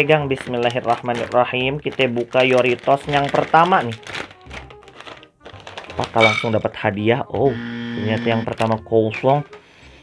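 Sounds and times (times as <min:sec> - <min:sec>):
foil snack bag rustling: 0:00.0 - 0:06.9, 0:08.4 - 0:09.2
faint background music: 0:00.0 - 0:10.0.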